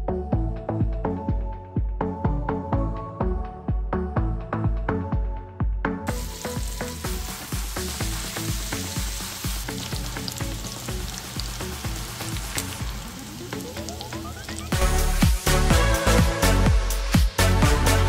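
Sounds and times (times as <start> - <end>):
background music with a beat: 0.0 - 18.0
sausage sizzling in a skillet: 6.1 - 15.6.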